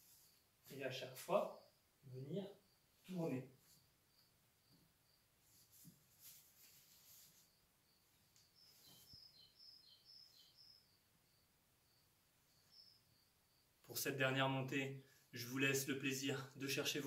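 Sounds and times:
faint birds chirping: 0:00.0 - 0:17.0
faint rustles: 0:05.4 - 0:09.6.

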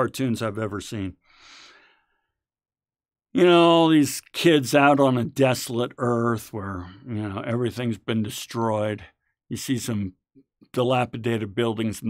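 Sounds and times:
man speaking: 0:00.0 - 0:01.2, 0:03.4 - 0:10.1, 0:10.7 - 0:12.0
man breathing: 0:01.2 - 0:02.4.

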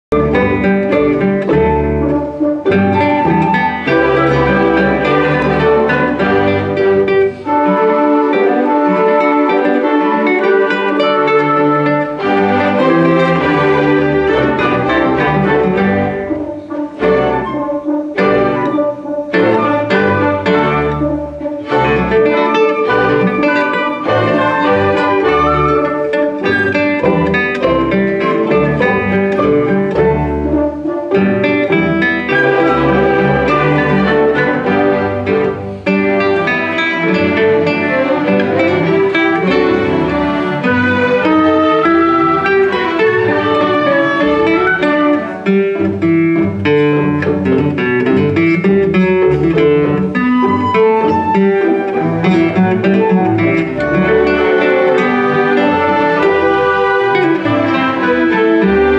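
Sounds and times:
classical guitar plucking: 0:00.1 - 0:58.9
orchestra bowed strings: 0:00.1 - 0:58.9.

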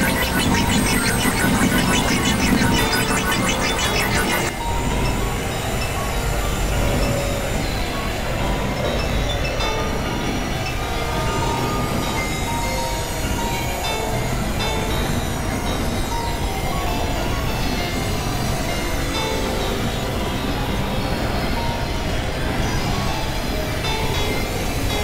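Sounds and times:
electronic noise music: 0:00.0 - 0:04.6
faint high gliding tones: 0:00.0 - 0:05.0.

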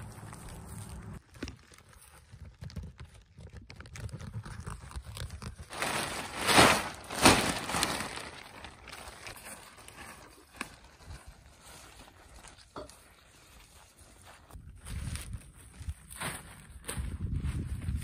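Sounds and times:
plastic sheeting crinkling: 0:04.2 - 0:12.6.

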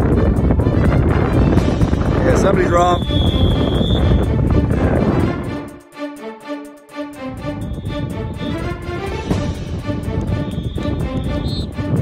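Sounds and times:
wind buffeting microphone: 0:00.0 - 0:05.7, 0:07.4 - 0:12.0
high whistle blast: 0:02.7 - 0:04.3, 0:07.4 - 0:08.6, 0:10.3 - 0:11.8.

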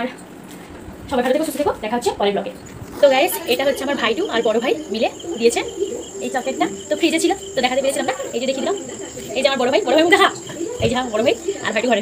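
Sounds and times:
voices talking: 0:01.5 - 0:12.0
high-pitched insect trill: 0:02.6 - 0:12.0.

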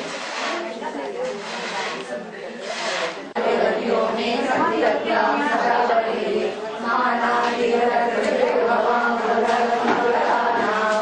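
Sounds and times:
voices chanting together: 0:03.2 - 0:11.0.

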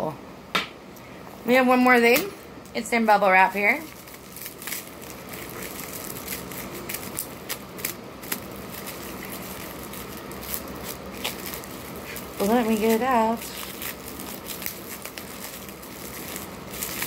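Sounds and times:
bubble wrap crinkling: 0:02.4 - 0:17.0.

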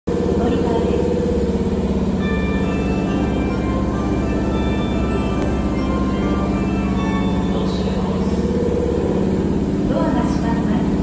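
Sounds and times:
electric train humming and buzzing: 0:00.1 - 0:11.0
high steady tones: 0:00.1 - 0:11.0.

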